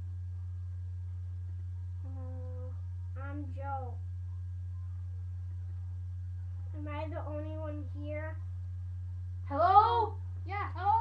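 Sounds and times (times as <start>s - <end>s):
loud low hum: 0.0s - 11.0s.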